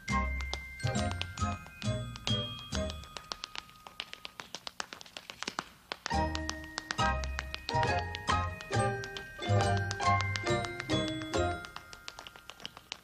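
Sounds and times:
tap-shoe clicks on stage floor: 0:00.2 - 0:13.0.

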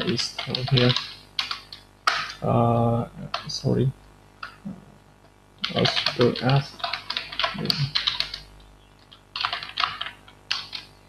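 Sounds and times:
computer keyboard typing: 0:00.0 - 0:02.4, 0:03.3 - 0:03.6, 0:05.6 - 0:10.9.

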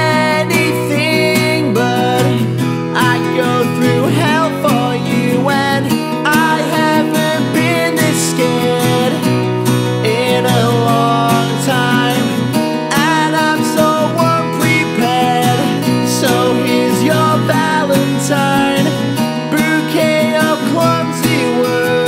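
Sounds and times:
acoustic guitar strumming: 0:00.0 - 0:22.0
man singing: 0:00.0 - 0:22.0.

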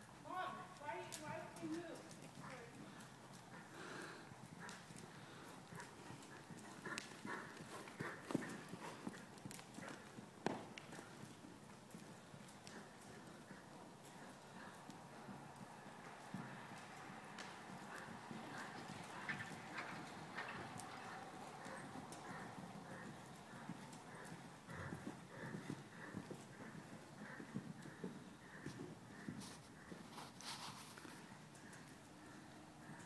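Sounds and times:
horse hoofbeats on soft dirt: 0:00.2 - 0:33.0.

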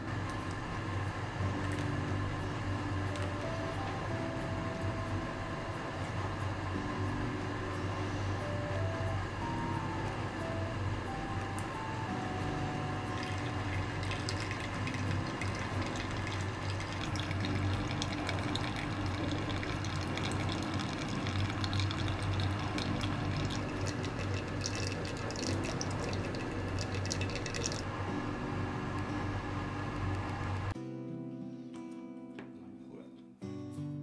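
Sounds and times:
soft background music: 0:00.0 - 0:34.0
water trickling and dripping: 0:13.0 - 0:27.9.

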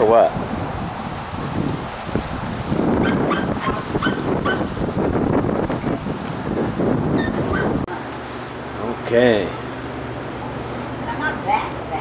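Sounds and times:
wind buffeting microphone: 0:00.0 - 0:07.9
dog yapping: 0:03.0 - 0:04.7, 0:07.2 - 0:07.8.

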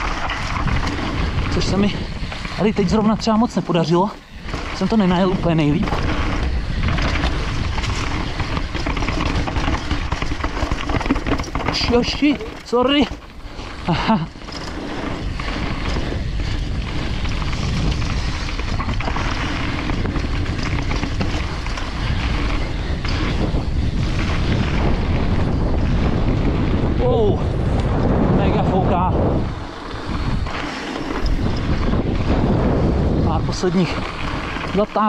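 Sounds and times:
bike tyres rumbling on dirt trail: 0:00.0 - 0:35.0
wind buffeting microphone: 0:00.0 - 0:35.0.

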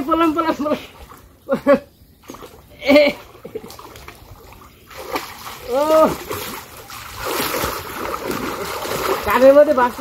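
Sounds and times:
water splashing: 0:02.2 - 0:10.0
person shouting: 0:05.6 - 0:06.2.

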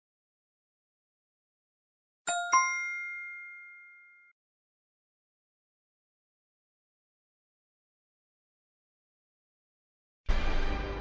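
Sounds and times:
two-note chime ringing: 0:02.3 - 0:04.3.

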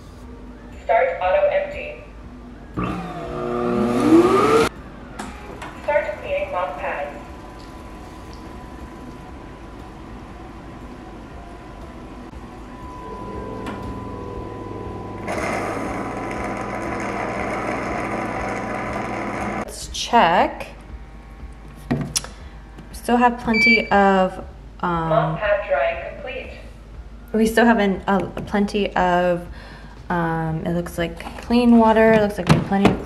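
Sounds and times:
vacuum suction motor humming: 0:02.8 - 0:04.7, 0:12.4 - 0:19.7.

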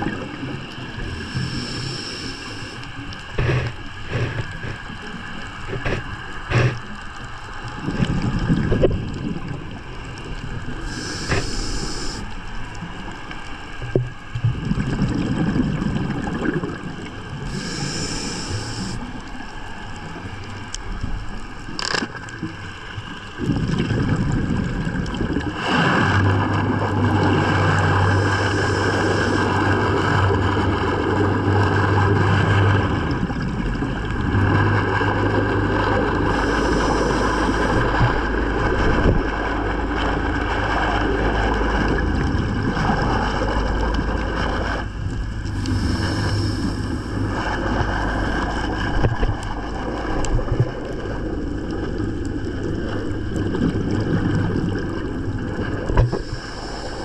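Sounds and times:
boat engine hum: 0:00.0 - 0:57.0
underwater rushing noise: 0:00.0 - 0:57.0
bursts of hiss: 0:10.9 - 0:12.3.

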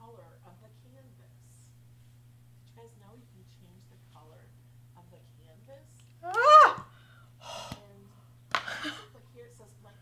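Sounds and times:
woman yelping: 0:06.2 - 0:06.9.

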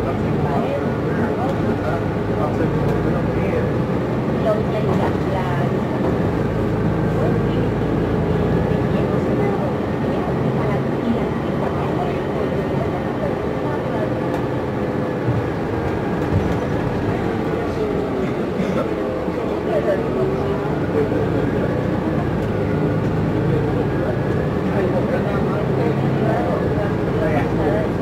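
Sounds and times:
bus engine and road rumble: 0:00.0 - 0:28.0.

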